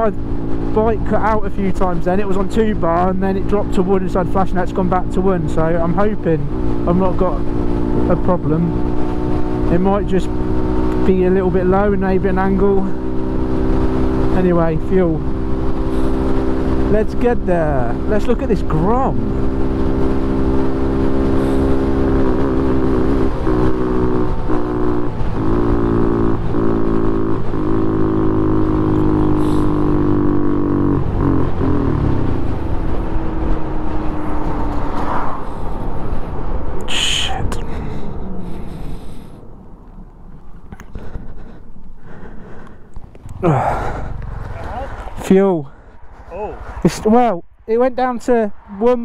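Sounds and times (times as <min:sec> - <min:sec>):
motorcycle engine running: 0:00.0 - 0:36.2, 0:37.7 - 0:46.2.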